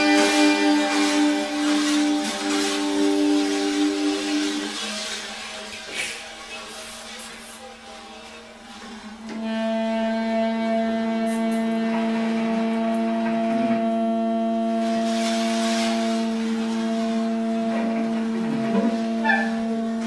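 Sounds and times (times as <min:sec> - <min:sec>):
long held tone: 0:00.0 - 0:04.9, 0:09.3 - 0:20.0.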